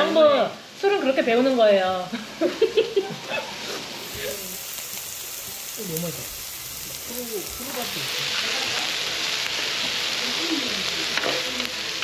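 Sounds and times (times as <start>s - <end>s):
food frying sizzle: 2.5s - 12.0s.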